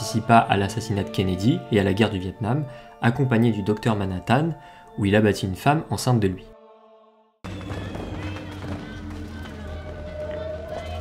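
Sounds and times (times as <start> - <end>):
film background music: 0.0 - 11.0.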